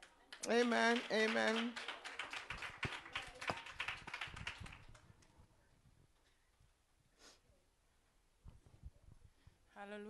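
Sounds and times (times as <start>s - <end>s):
congregation clapping: 0.0s - 5.0s.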